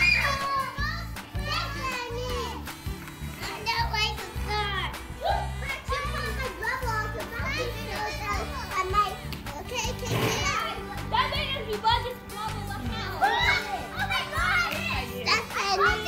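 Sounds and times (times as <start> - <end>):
children shouting and squealing: 0.0 - 2.7, 3.5 - 16.0
background music: 0.0 - 16.0.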